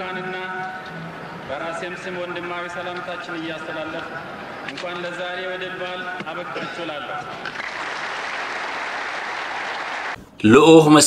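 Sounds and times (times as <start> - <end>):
man's amplified speech: 0.0 - 0.8, 1.5 - 7.4, 10.4 - 11.0
large crowd applauding: 7.4 - 10.2.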